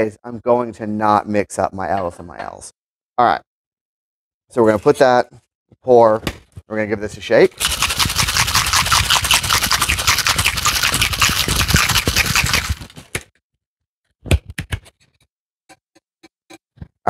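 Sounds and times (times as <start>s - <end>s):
ice rattling in cocktail shaker: 7.6s - 13.0s.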